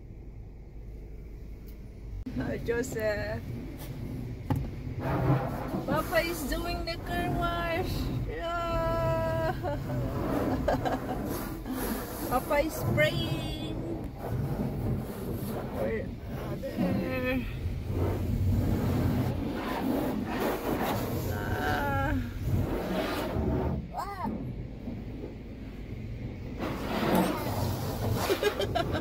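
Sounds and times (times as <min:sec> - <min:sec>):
low rumble: 0:00.0 - 0:29.0
high-pressure spray hitting car: 0:03.6 - 0:08.4, 0:09.1 - 0:29.0.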